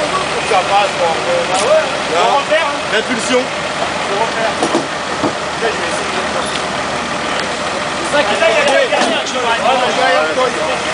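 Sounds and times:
engine running steadily: 0.0 - 10.9.

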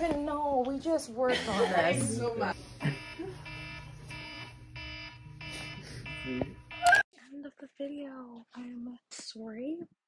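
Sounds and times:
electronic alarm beeping: 2.8 - 7.0.

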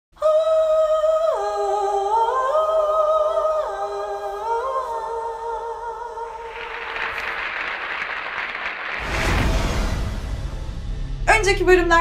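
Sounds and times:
applause: 6.4 - 9.9.

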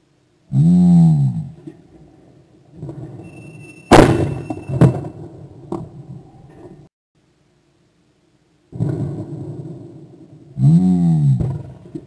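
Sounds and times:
shotgun shots: 3.9 - 5.2.

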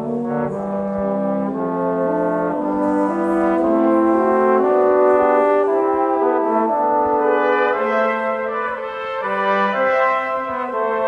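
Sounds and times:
brass ensemble playing chords: 0.0 - 11.0.

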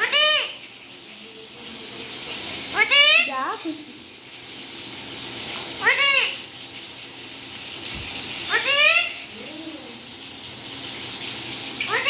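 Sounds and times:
parakeet call rising and falling: 8.5 - 9.3.

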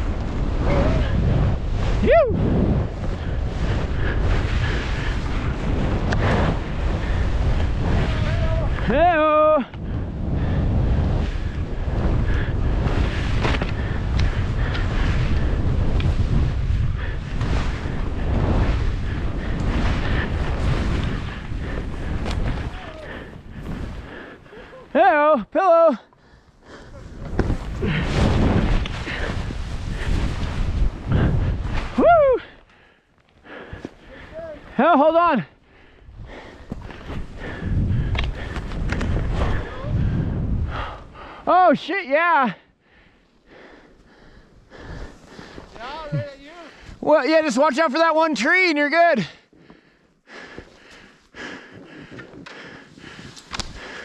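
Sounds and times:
skis carving through powder snow: 0.0 - 24.8, 26.8 - 32.2, 36.4 - 40.9, 44.8 - 49.3, 51.8 - 54.0
wind over microphone: 0.0 - 25.0, 26.3 - 32.7, 35.6 - 41.5, 42.9 - 47.1, 50.3 - 54.0
skier whooping: 0.5 - 2.8, 7.8 - 9.6, 22.4 - 23.3, 24.5 - 25.0, 31.8 - 32.6.

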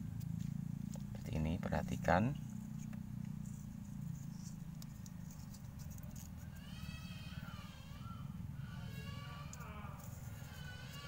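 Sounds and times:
cord rustling while knotted: 0.0 - 1.4, 2.3 - 6.6
steady low hum: 0.0 - 11.0
drawn-out animal cry: 6.2 - 11.0.

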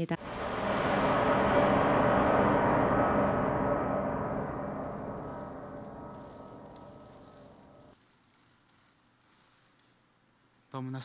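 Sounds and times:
gong ringing: 0.2 - 7.9.

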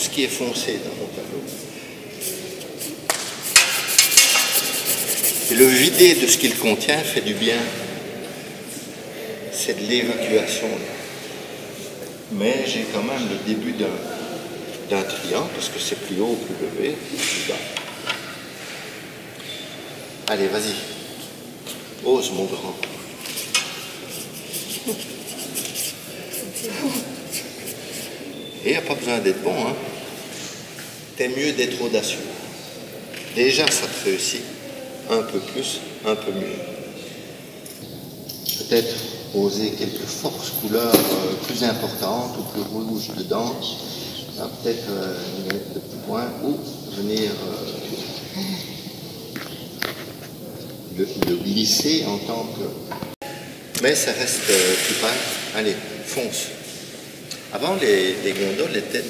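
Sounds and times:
faint room noise: 0.0 - 59.0
paintbrush scrubbing on paper: 2.8 - 7.1, 23.2 - 28.2.

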